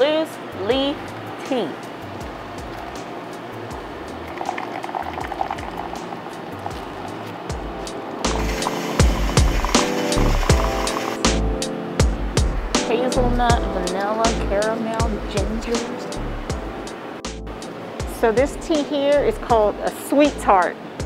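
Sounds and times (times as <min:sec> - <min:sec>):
background music with bass beat: 0:02.0 - 0:14.6
hot water pouring into a cup: 0:04.2 - 0:07.1, 0:08.3 - 0:11.2.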